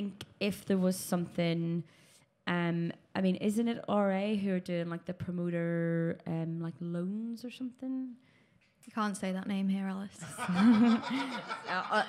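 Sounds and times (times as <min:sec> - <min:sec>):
people talking: 0:00.0 - 0:01.8, 0:02.5 - 0:08.2, 0:08.9 - 0:12.0
people laughing: 0:10.2 - 0:12.0.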